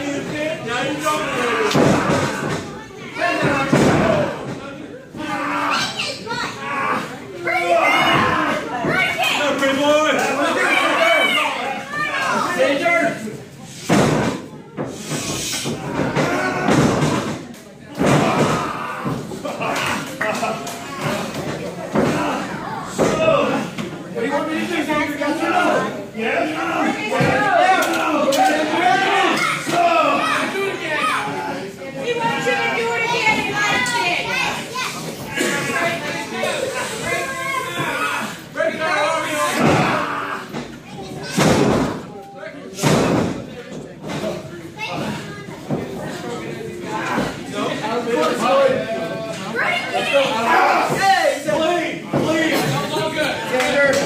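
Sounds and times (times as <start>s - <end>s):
crowd voices in large hall: 0.0s - 54.0s.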